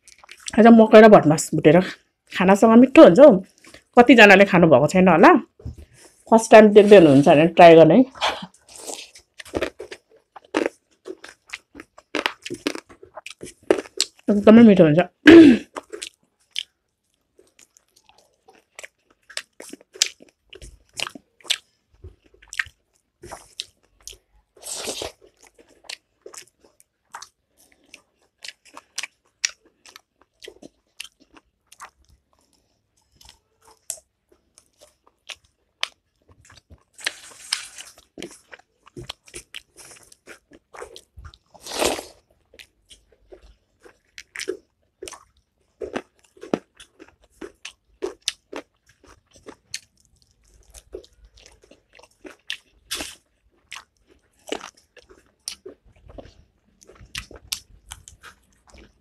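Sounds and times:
person chewing and crunching food: 0.0s - 0.6s, 8.1s - 14.3s, 15.3s - 59.0s.

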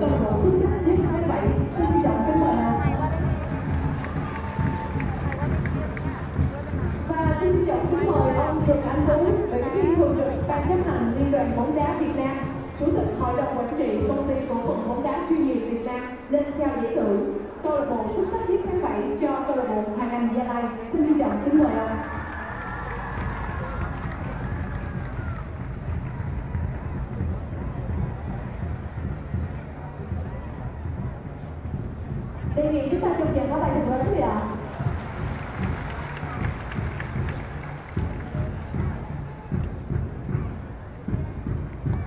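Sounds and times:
crowd rumble: 0.0s - 15.6s, 20.8s - 42.0s.

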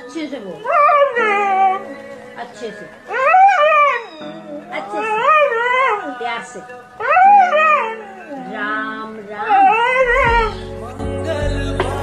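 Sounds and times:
music with low notes: 0.0s - 12.0s
dog howling: 0.6s - 2.3s, 3.0s - 10.7s
bass line: 10.0s - 12.0s.

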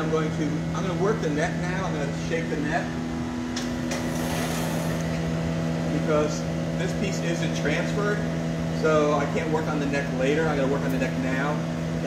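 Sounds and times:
gas furnace and blowers droning: 0.0s - 12.0s.

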